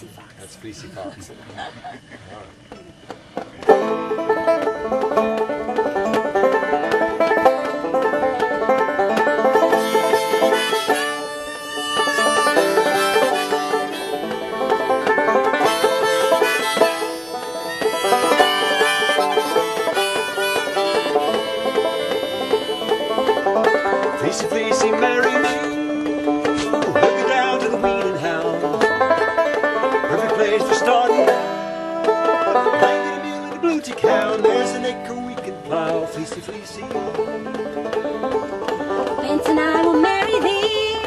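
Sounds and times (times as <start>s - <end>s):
acoustic strings: 0.0s - 41.0s
acoustic banjo playing folk tune: 3.2s - 41.0s.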